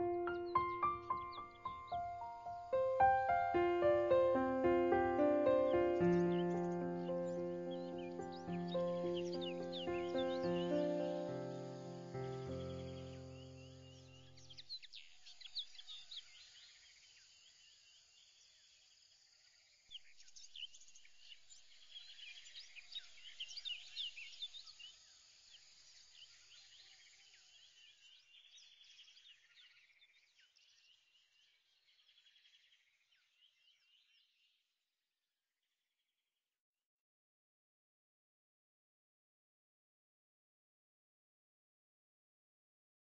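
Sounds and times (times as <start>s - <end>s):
background music: 0.0s - 14.0s
birds chirping: 0.0s - 16.4s.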